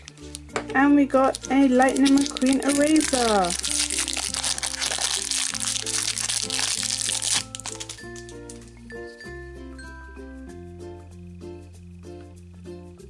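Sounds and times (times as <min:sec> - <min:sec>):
plastic wrapper crinkling: 0:00.0 - 0:08.6
light background music: 0:00.0 - 0:13.0.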